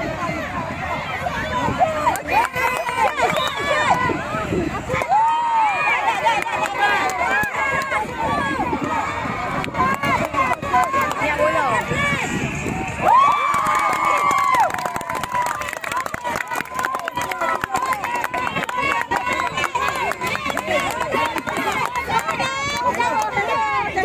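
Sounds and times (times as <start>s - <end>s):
crowd shouting and cheering: 0.0s - 24.0s
hand clapping: 13.4s - 23.4s.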